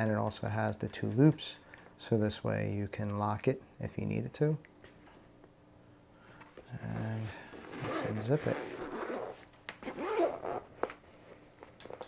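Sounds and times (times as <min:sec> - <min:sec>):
zipper being pulled open: 0:07.0 - 0:10.9.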